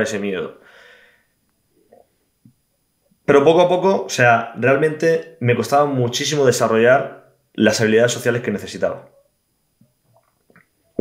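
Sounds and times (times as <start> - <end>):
man speaking: 0.0 - 0.6, 3.3 - 9.2
faint small sounds: 0.0 - 3.4, 7.1 - 11.0.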